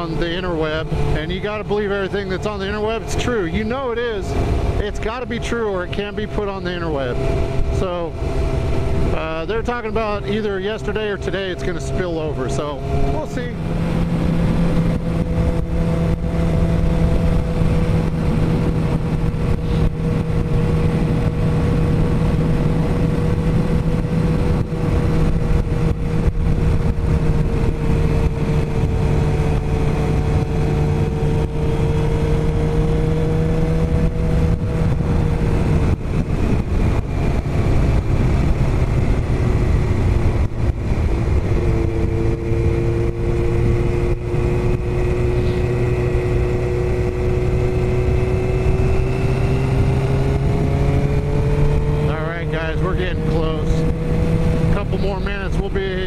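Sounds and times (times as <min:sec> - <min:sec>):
motorcycle engine cruising: 0:00.0 - 0:56.0
wind rush at road speed: 0:00.0 - 0:56.0.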